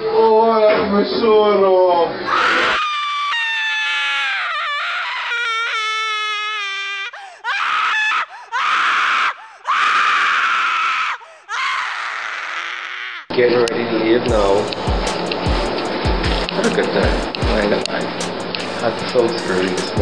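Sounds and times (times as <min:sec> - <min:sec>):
high-pitched voice screaming: 0:02.3 - 0:13.3.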